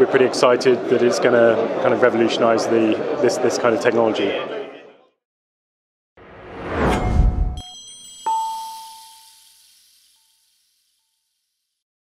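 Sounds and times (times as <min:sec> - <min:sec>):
bright metallic ding: 0:06.8 - 0:10.5.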